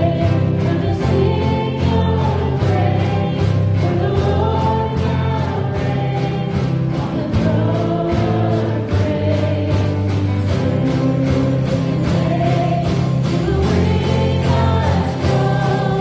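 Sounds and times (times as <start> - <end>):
acoustic guitar: 0.0 - 16.0
drum kit beat: 0.0 - 16.0
people singing: 0.0 - 16.0.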